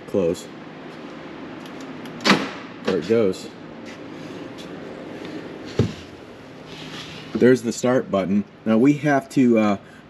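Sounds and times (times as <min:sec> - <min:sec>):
low background hum: 0:00.0 - 0:10.0
car lock clunk: 0:02.2 - 0:02.6.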